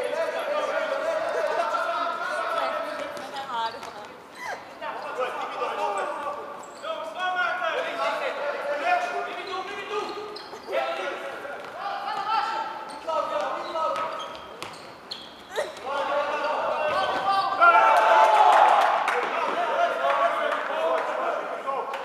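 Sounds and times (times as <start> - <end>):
voices shouting in echoing hall: 0.0 - 3.4, 4.4 - 22.0.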